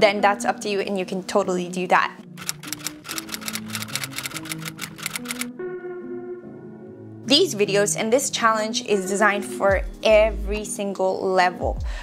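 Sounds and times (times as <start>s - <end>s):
background music with held notes: 0.0s - 12.0s
typewriter key clicks: 2.4s - 5.5s.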